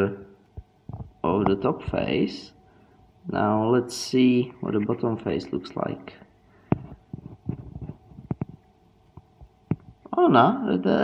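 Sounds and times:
circuit board handling rustle: 6.7 - 10.0
sharp clicks and taps: 6.7 - 10.1.

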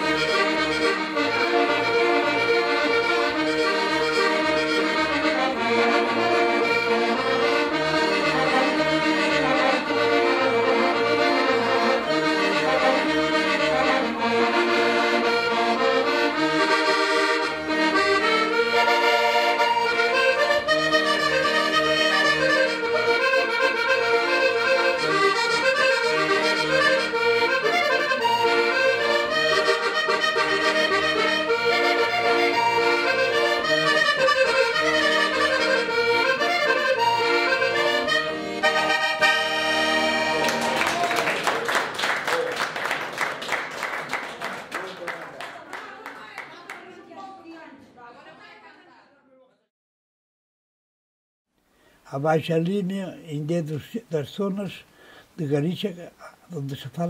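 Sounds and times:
accordion melody: 0.0 - 45.1, 52.0 - 57.0.

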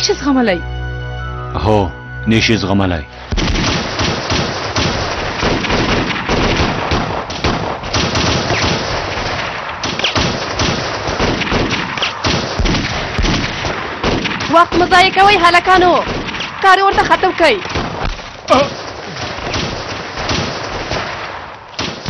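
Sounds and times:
rifle gunfire: 3.3 - 22.0.

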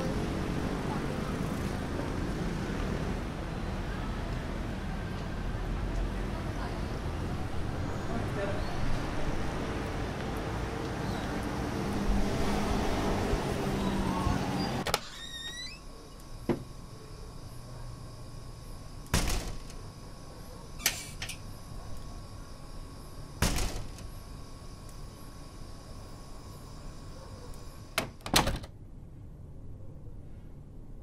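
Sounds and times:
low outdoor background rumble: 0.0 - 31.0.

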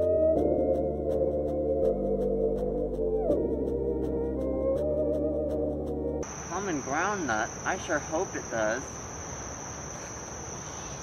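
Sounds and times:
insects high-pitched drone: 6.2 - 11.0.

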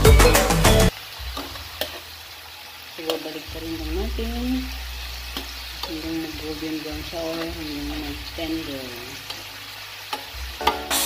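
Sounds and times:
background music with beat: 0.0 - 1.6, 10.3 - 11.0
beef sizzling in frying pan: 0.9 - 11.0.

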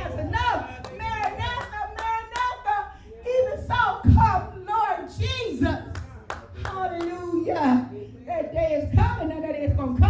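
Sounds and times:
hand claps: 5.9 - 7.2.

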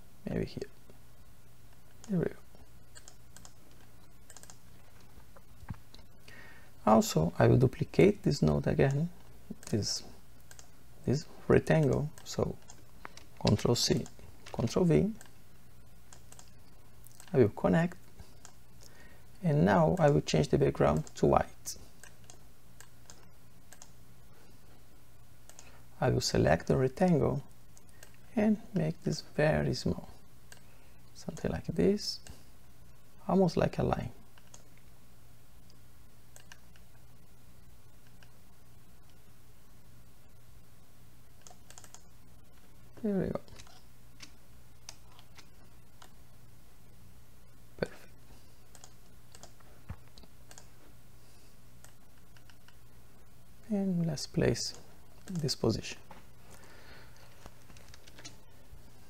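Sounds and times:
low background hum: 0.0 - 59.0
computer mouse clicks: 2.9 - 4.6, 10.4 - 10.7, 11.7 - 15.4, 16.1 - 17.4, 18.2 - 18.6, 21.0 - 21.2, 22.0 - 24.0, 25.4 - 25.7, 27.7 - 28.2, 30.5 - 30.7, 34.3 - 34.9, 35.7 - 36.9, 38.0 - 38.4, 41.4 - 42.1, 43.5 - 46.2, 48.7 - 50.7, 51.8 - 52.8, 54.7 - 55.5.

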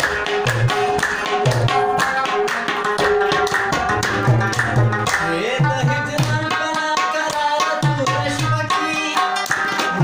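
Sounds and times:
tabla drumming: 0.0 - 10.0.

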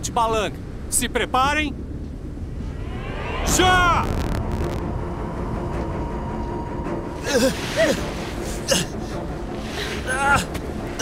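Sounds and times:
steady rushing noise: 0.0 - 8.6.

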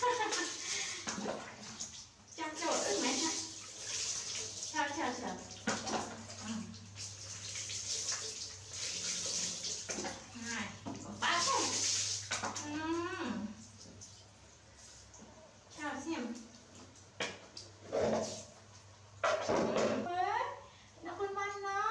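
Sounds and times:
water pouring and splashing: 0.0 - 12.8, 16.3 - 19.8.

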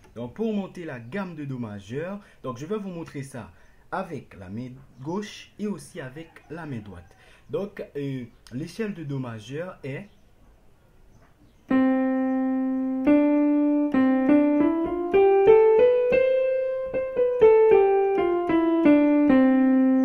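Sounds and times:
keyboard playing piano scale: 11.7 - 20.0.

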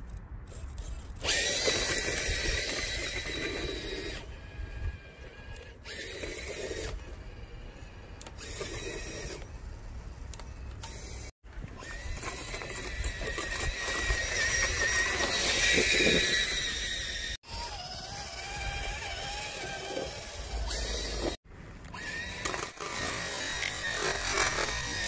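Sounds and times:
electric motor whining: 10.3 - 25.0.

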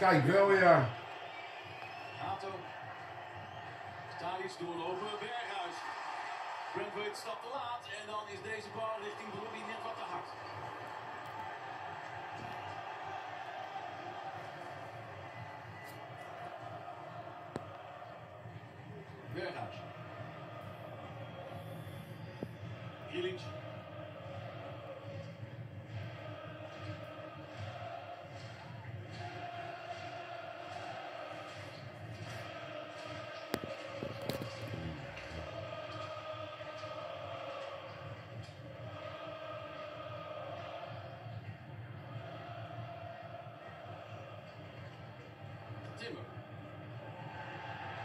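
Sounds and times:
crowd chanting: 0.0 - 48.0
crowd voices: 8.4 - 48.0.

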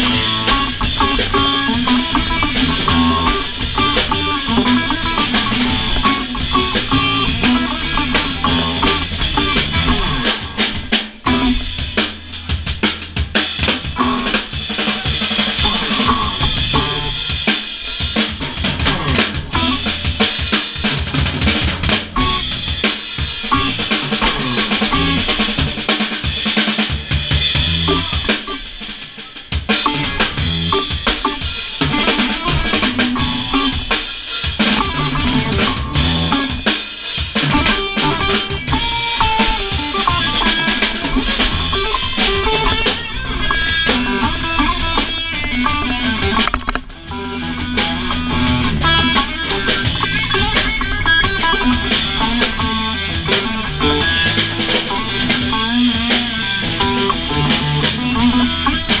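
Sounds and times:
drum kit: 0.0 - 59.0
electric bass: 0.0 - 59.0
electric guitar: 0.0 - 59.0.

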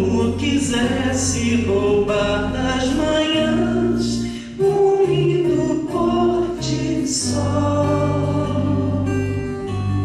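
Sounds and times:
man singing: 0.0 - 9.4
strummed acoustic guitar: 0.0 - 10.0.

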